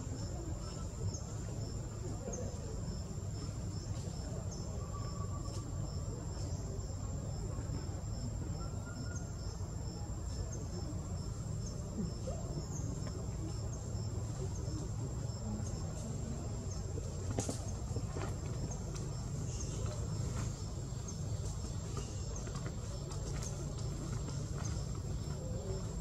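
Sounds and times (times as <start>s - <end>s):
insects high-pitched whine: 0.0s - 26.0s
insects pulsing chirp: 0.0s - 26.0s.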